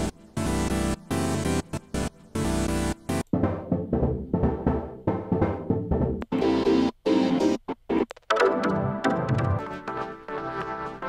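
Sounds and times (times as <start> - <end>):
synthesizer chords: 0.0 - 11.0
low bass line: 3.4 - 6.3.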